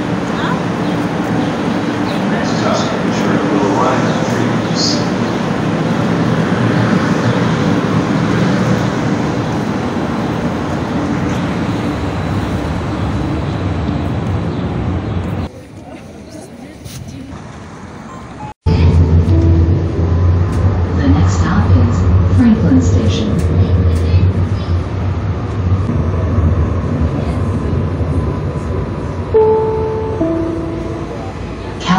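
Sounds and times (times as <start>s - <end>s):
train wheels and motors rumbling: 0.0s - 15.6s, 16.3s - 31.9s
low drone of moving train: 0.0s - 31.9s.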